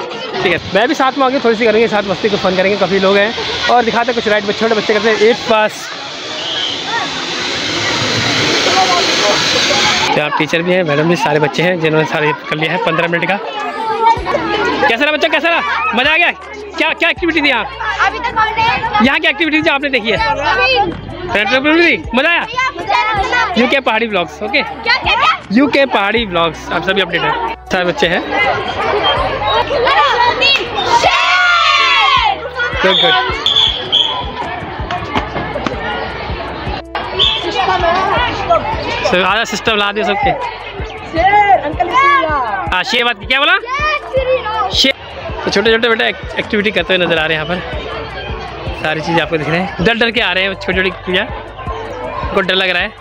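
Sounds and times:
faint children's voices: 0.0s - 53.0s.

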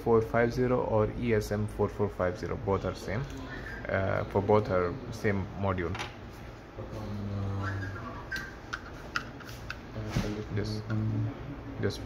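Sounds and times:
man saying uhh: 6.9s - 8.2s.

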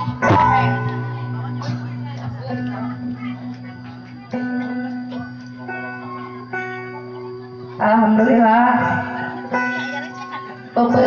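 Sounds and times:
steady low drone: 0.0s - 9.5s
plucked string notes: 0.0s - 11.0s.

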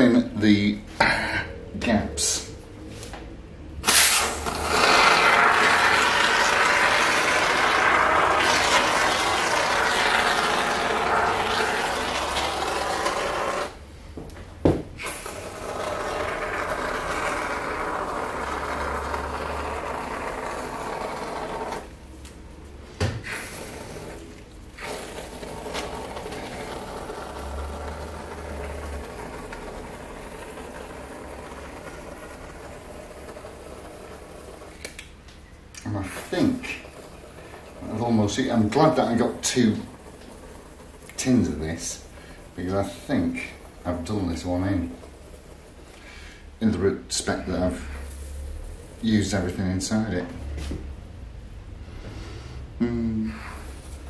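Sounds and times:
aerosol foam can hissing: 3.8s - 13.8s, 23.2s - 34.8s.

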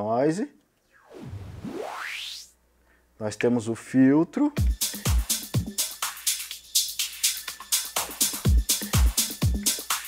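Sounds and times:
filtered white noise sweep: 0.8s - 2.6s.

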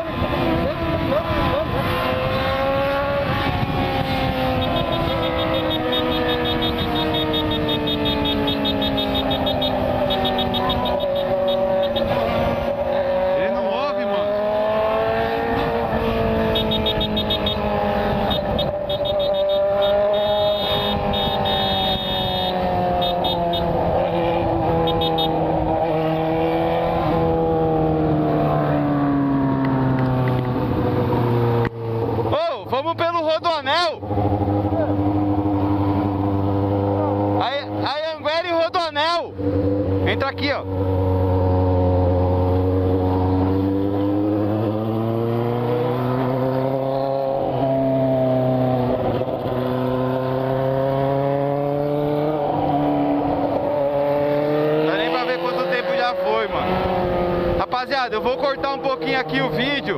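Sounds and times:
motorcycle engine running: 0.5s - 13.4s, 15.6s - 25.4s.

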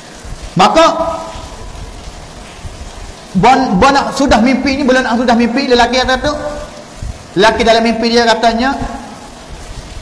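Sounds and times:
steady background hiss: 0.0s - 10.0s
man speaking: 0.6s - 1.4s, 3.4s - 6.8s, 7.4s - 9.2s.

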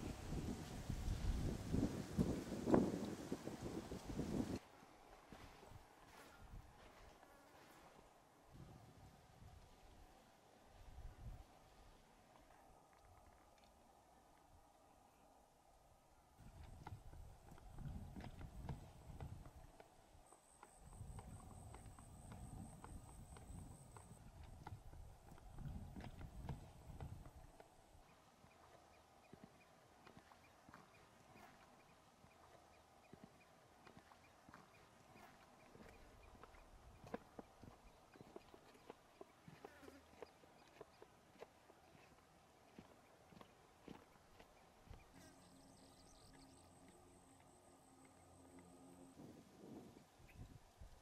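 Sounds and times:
wind gusts on microphone: 0.0s - 4.6s, 8.5s - 9.8s, 10.8s - 11.6s, 16.4s - 19.6s, 20.8s - 27.5s, 49.1s - 51.0s
faint high pulsing tone: 45.1s - 49.4s.

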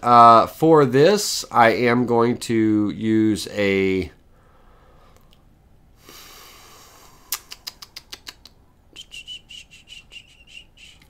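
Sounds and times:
soft hiss: 0.0s - 11.0s
high pulsing chirping tone: 9.0s - 11.0s.

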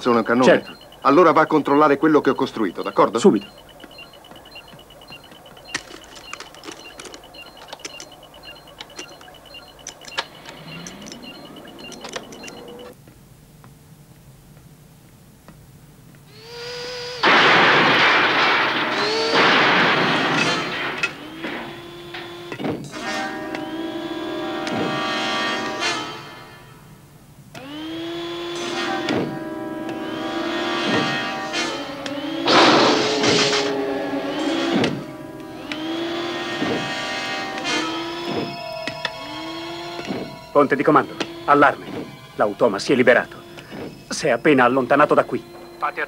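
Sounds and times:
sustained synthesizer tones: 0.0s - 13.0s, 18.7s - 26.6s, 28.6s - 46.0s.

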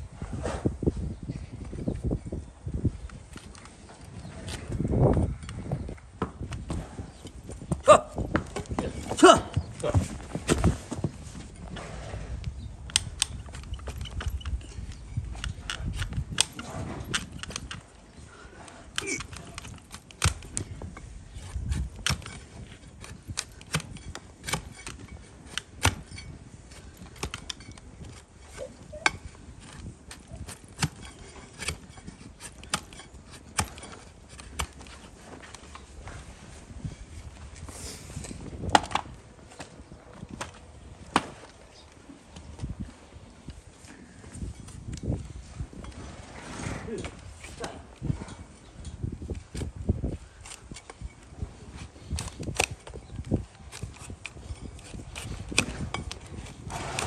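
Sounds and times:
hoof knife cracking hoof horn: 28.5s - 34.9s.

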